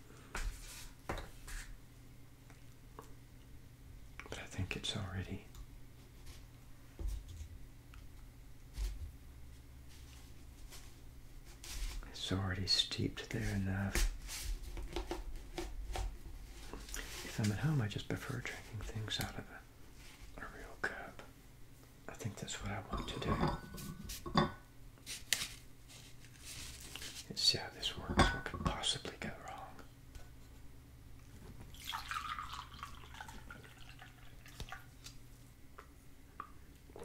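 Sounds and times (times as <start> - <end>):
paper cup taps and rustles: 14.8 - 16.1
tea pouring into a teacup: 31.7 - 34.9.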